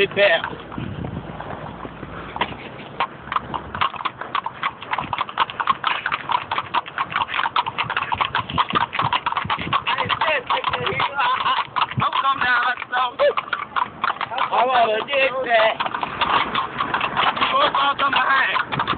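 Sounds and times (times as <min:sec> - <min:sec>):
hooves clip-clopping on pavement: 0:00.0 - 0:18.9.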